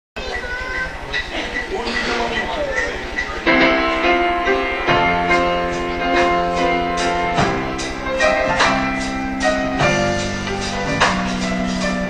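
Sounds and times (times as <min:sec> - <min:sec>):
indistinct voices: 0:00.2 - 0:12.0.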